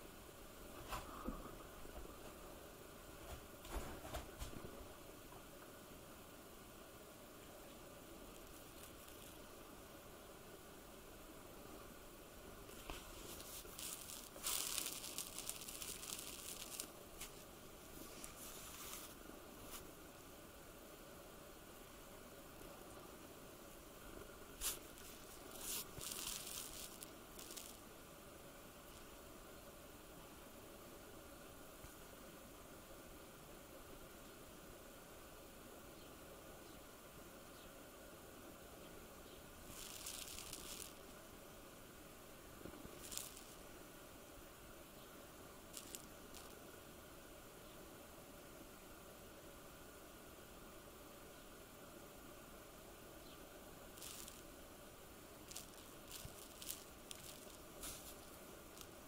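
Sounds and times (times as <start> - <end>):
rustling: 7.7 - 9.6, 12.6 - 20.0, 24.6 - 27.9, 39.6 - 41.2, 42.6 - 43.7, 45.7 - 46.6, 53.2 - 54.6, 55.3 - 59.0.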